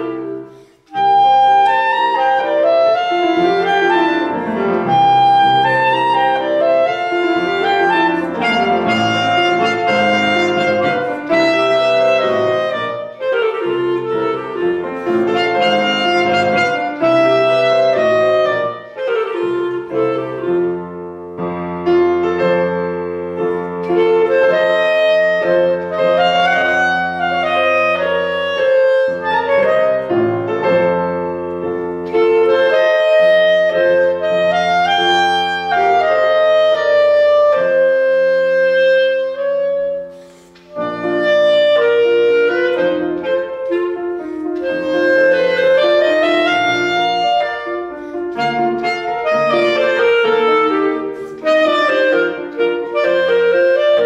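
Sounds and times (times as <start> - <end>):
clarinet melody: 0.0 - 54.0
grand piano accompaniment: 0.0 - 54.0.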